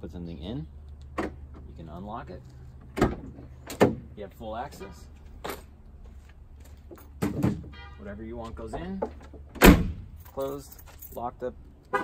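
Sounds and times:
stroller thud in truck bed: 7.2s - 7.7s.

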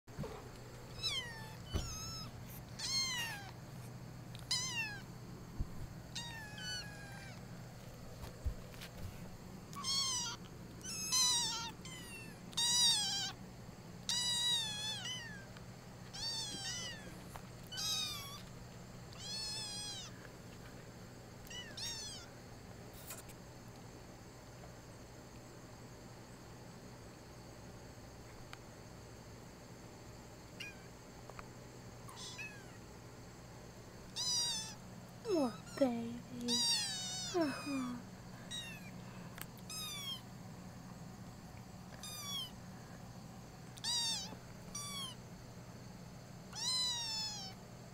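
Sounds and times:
kittens meowing: 0.9s - 3.6s, 4.4s - 5.1s, 6.1s - 7.4s, 9.7s - 13.4s, 14.0s - 15.5s, 16.1s - 18.5s, 19.1s - 20.2s, 21.4s - 22.3s, 32.1s - 32.8s, 34.1s - 34.8s, 35.5s - 35.8s, 36.4s - 39.0s, 39.6s - 40.3s, 41.9s - 42.6s, 43.8s - 45.2s, 46.5s - 47.6s.

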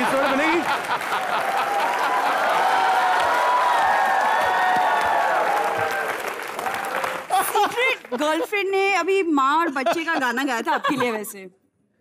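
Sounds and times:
studio audience applauding: 0.0s - 8.9s.

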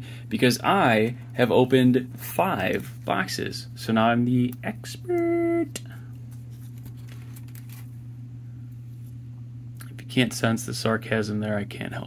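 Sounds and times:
steady low hum: 0.0s - 12.0s
cards tapping and rustling: 6.3s - 7.9s.

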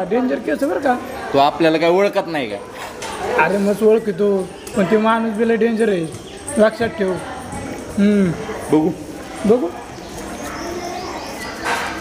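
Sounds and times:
high bird chirps: 9.9s - 12.0s.

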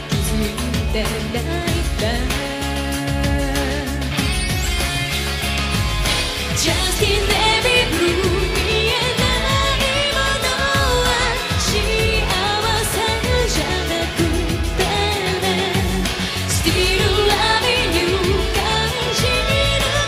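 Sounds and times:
woman singing: 0.0s - 4.4s, 6.5s - 20.0s
rock band playing: 0.0s - 20.0s.

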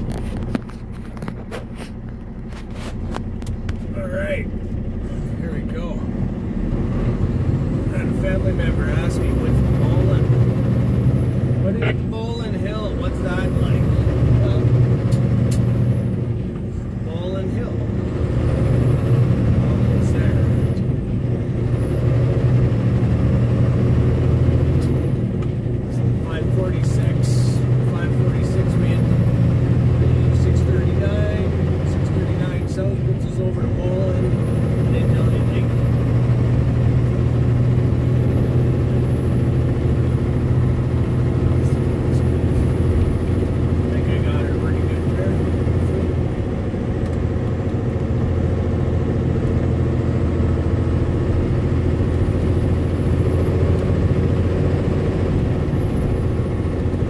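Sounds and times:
truck diesel engine droning: 0.0s - 57.0s.

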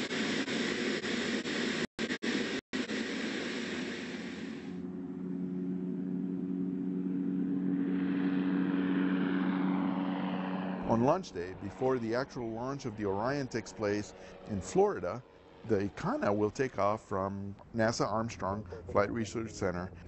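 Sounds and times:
propeller drone with low hum: 0.0s - 20.0s
turboprop engine rushing noise: 0.0s - 20.0s.

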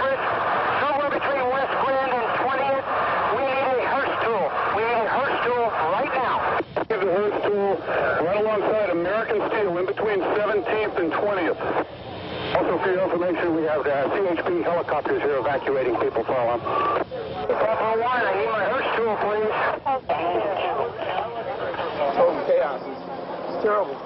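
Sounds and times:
men's voices over two-way radio: 0.0s - 11.9s, 12.5s - 23.0s.

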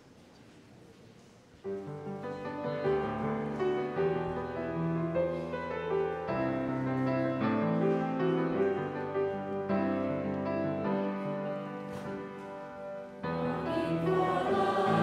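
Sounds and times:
piano playing hymn chords: 1.8s - 15.0s.

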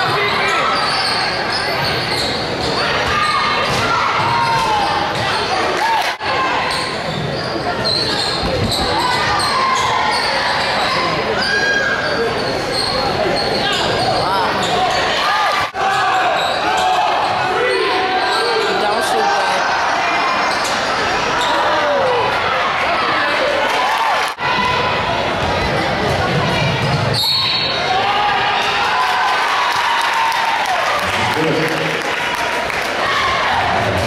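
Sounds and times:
echoing crowd chatter: 0.0s - 34.0s.

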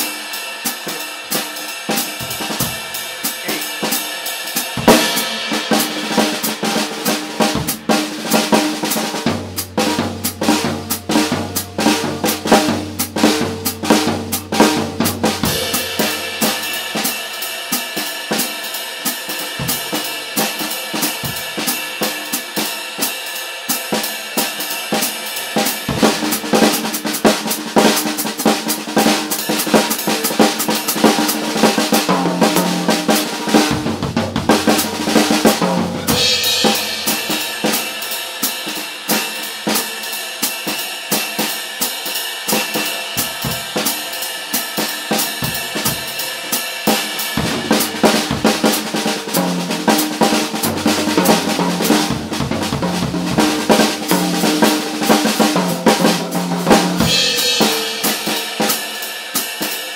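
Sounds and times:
snare and tom figures: 0.0s - 18.6s, 24.0s - 40.0s, 40.7s - 59.8s
ride cymbal and hi-hat swing: 0.0s - 32.2s, 32.8s - 59.9s
deeper drums: 0.6s - 22.4s, 24.8s - 40.0s, 42.3s - 59.6s
cymbal crash: 2.2s - 7.9s, 15.4s - 18.2s, 34.6s - 39.2s, 57.0s - 59.6s.

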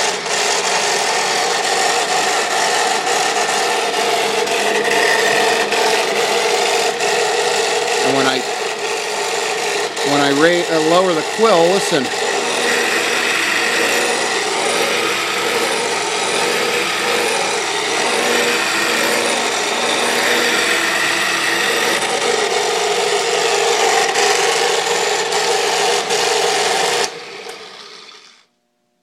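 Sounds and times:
drill press grinding noise: 0.0s - 28.5s.

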